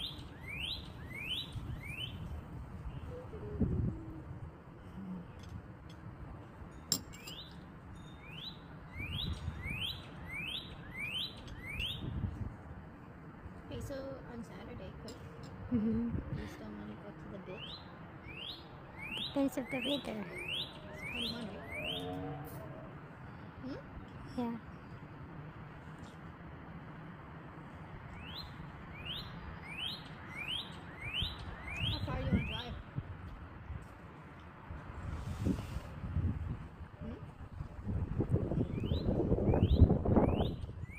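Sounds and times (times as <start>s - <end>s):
bird singing rising whistled notes: 0.0s - 3.2s, 7.2s - 12.2s, 17.6s - 23.6s, 28.2s - 32.7s, 38.6s - 40.9s
cardinal singing upslurred whistles: 17.6s - 22.4s.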